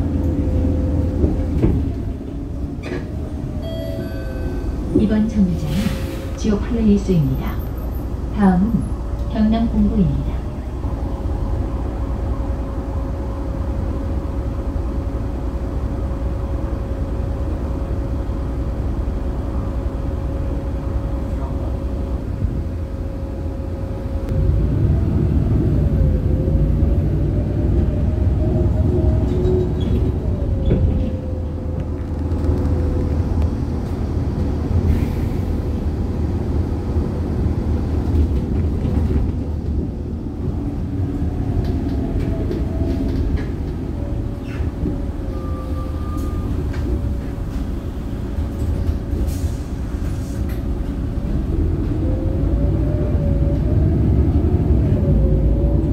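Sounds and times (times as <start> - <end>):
bus engine rumble: 0.0 - 55.9.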